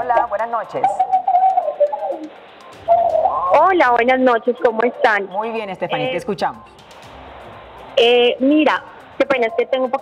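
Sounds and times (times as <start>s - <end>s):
wavering hum-like phone tone: 0.8s - 6.2s, 9.2s - 10.0s.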